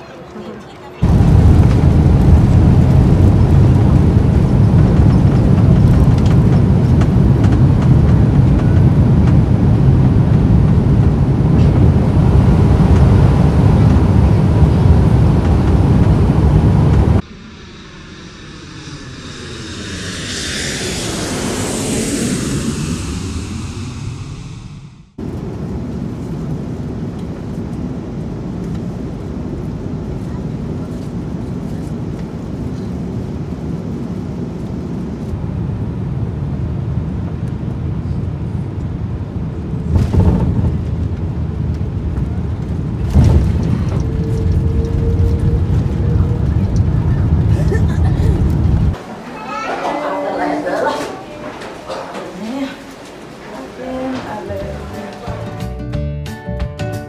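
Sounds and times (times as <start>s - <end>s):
airliner cabin drone: 0.0s - 55.8s
jet engines rumbling: 0.0s - 55.8s
whooshing effect: 15.7s - 25.3s.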